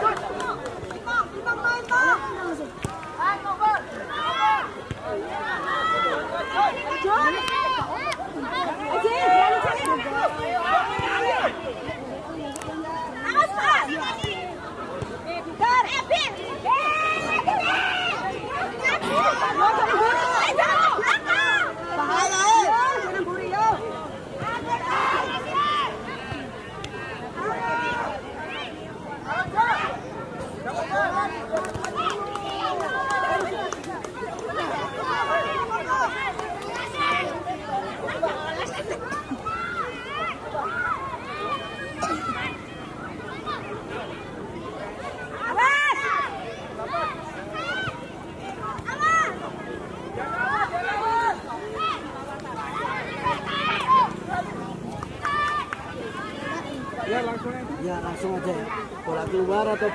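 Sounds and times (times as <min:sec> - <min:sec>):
voices shouting: 0:00.0 - 0:59.9.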